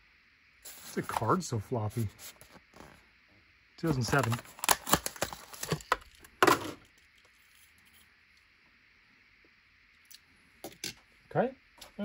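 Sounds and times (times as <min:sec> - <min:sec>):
plastic packaging crackle: 0:03.8 - 0:07.8.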